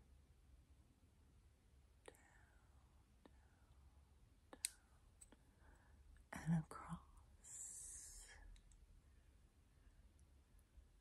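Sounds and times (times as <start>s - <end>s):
woman whispering: 2.1s - 3.5s, 6.3s - 8.6s.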